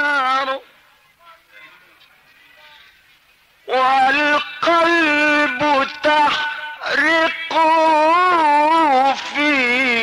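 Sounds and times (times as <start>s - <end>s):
man chanting a devotional hymn: 0.0s - 10.0s.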